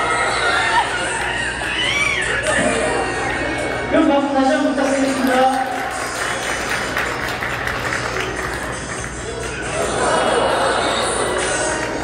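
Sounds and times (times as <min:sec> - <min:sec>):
audience applauding: 0:00.0 - 0:02.4, 0:04.8 - 0:12.0.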